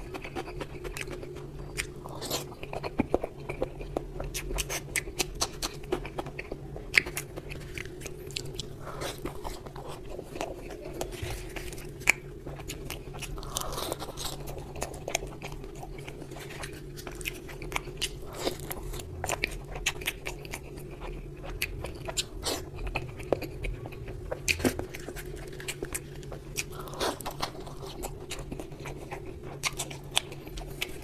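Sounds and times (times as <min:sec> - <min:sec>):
man chewing food: 0:00.0 - 0:31.0
steady low hum: 0:00.0 - 0:31.0.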